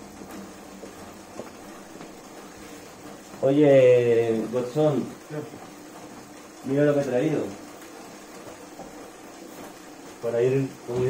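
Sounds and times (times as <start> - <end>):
faint whir of bike trainer: 0.0 - 11.0.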